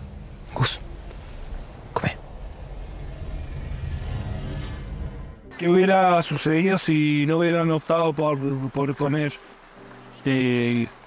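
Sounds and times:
low steady rumble: 0.0s - 5.8s.

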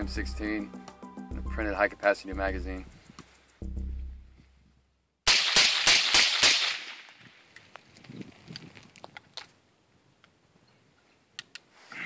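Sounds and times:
rifle shots echoing: 5.3s - 7.2s.

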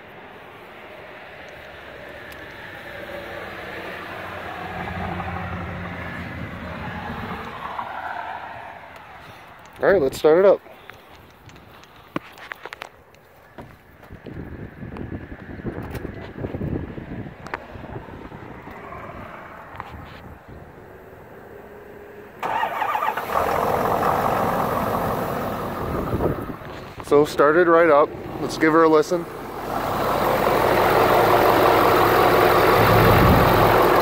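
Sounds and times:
clicks and rustling: 10.8s - 14.2s
engine cranking and idling: 22.4s - 34.0s.

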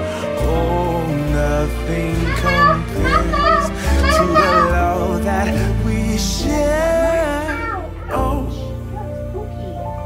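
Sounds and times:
background music with bass notes: 0.0s - 10.0s
toddler babbling: 2.3s - 4.8s, 7.4s - 8.2s.

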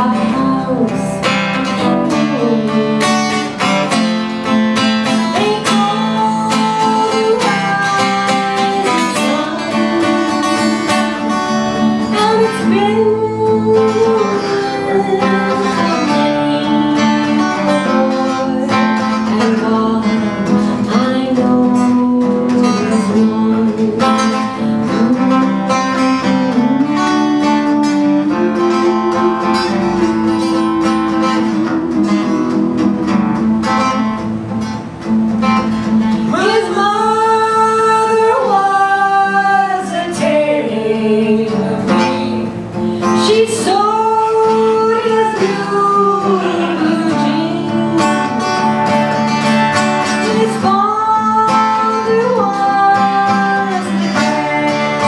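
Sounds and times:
acoustic guitar strummed: 0.0s - 55.0s
man singing: 43.3s - 48.6s.

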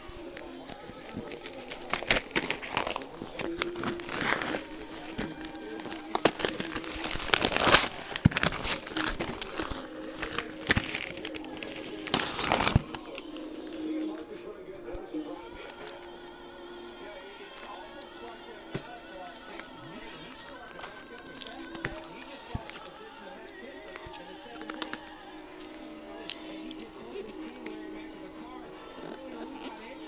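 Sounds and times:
packaging crinkling and ripping: 0.0s - 14.2s, 15.3s - 16.4s, 17.0s - 30.0s.

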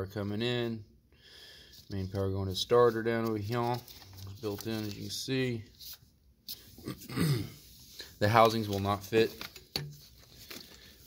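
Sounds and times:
man clearing his throat: 6.8s - 7.6s.

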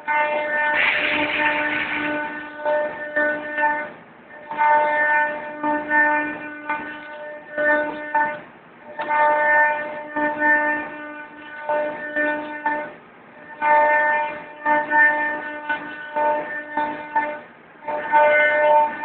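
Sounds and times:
machine whine: 0.0s - 4.8s.

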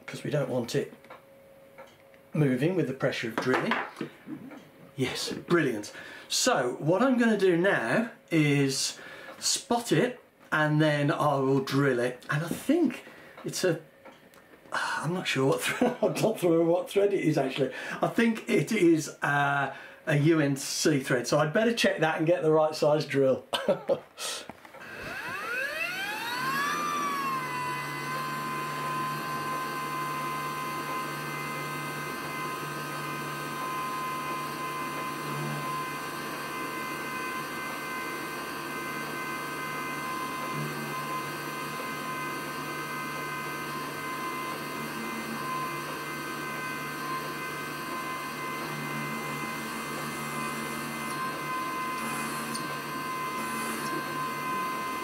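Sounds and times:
drill cutting into aluminium: 24.8s - 55.0s
milling machine spindle whine: 24.8s - 55.0s.

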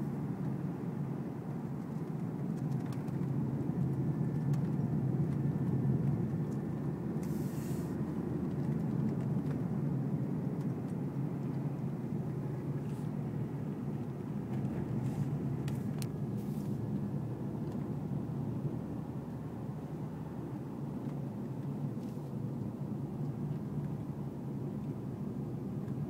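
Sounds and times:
car road and engine rumble: 0.0s - 26.0s
brief hisses: 7.2s - 8.0s.

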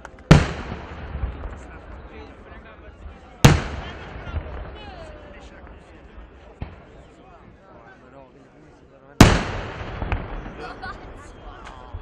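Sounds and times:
crowd chatter: 0.0s - 12.0s
loud firework bang: 9.2s - 12.0s.

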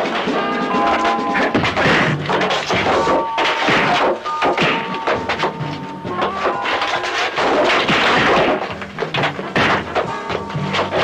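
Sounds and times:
thumps and knocks: 0.0s - 11.0s.

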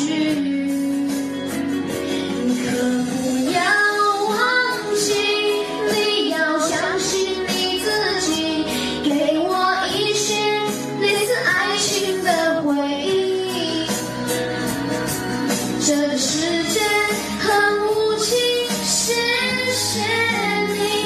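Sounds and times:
male singer singing pop melody: 0.0s - 7.7s
instrumental backing: 0.0s - 21.0s.

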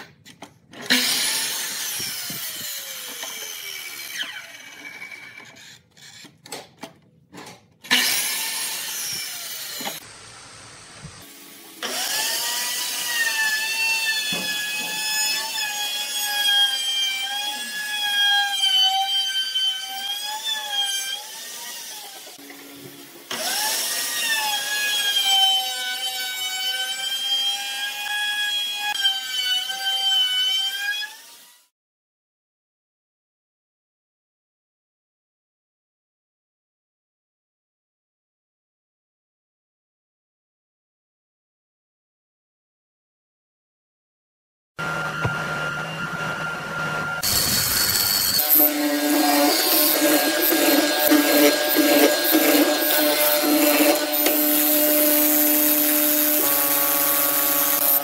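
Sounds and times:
sawing bursts: 0.8s - 6.4s, 7.8s - 10.1s, 11.1s - 22.4s, 45.6s - 58.0s
electric router whine: 0.9s - 5.6s, 44.8s - 58.0s
miter saw winding down: 44.8s - 54.7s.

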